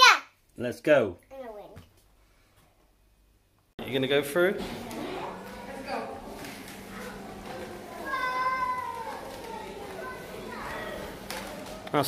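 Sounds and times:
child's high-pitched call: 8.0 - 9.2.

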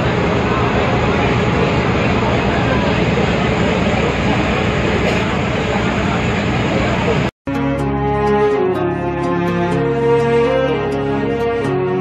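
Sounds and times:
boat engine drone: 0.0 - 7.3
crowd chattering: 0.0 - 7.3.

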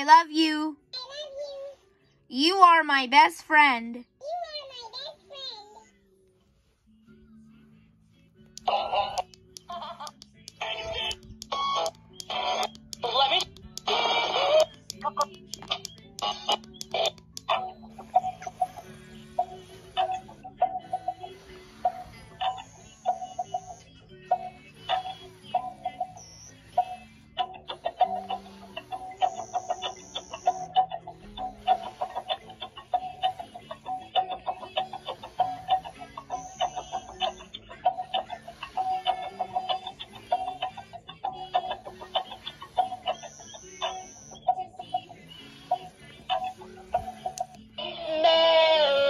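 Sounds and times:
electronic toy tune: 8.6 - 49.0.

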